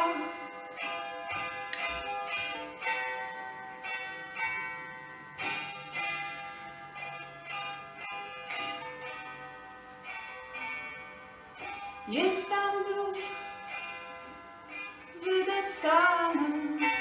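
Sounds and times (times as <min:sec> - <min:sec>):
hammered dulcimer playing: 0:00.0 - 0:17.0.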